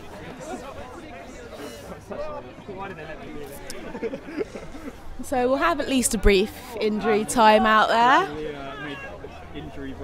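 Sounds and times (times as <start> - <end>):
people chatting at a distance: 0.0 - 10.0.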